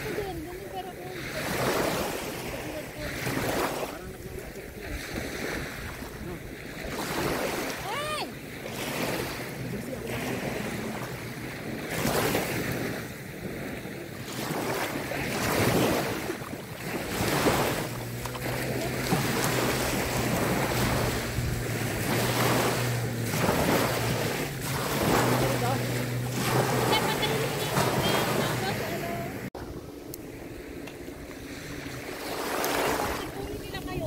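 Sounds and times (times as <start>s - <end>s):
small waves breaking on shore: 0.0s - 34.0s
wind on microphone: 0.0s - 34.0s
steady low hum: 16.1s - 34.0s.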